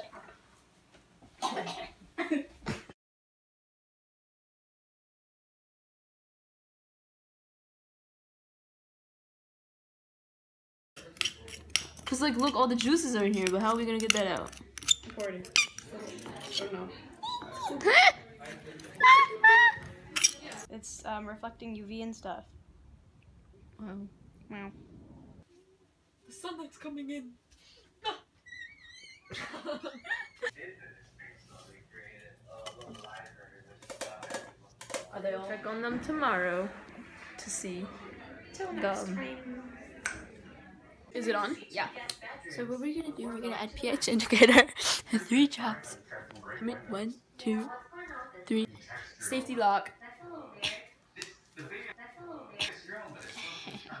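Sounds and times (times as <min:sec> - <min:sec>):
young woman laughing: 0:02.2 - 0:02.9, 0:19.0 - 0:19.9, 0:29.0 - 0:30.5
people laughing: 0:17.4 - 0:20.0, 0:28.9 - 0:30.6.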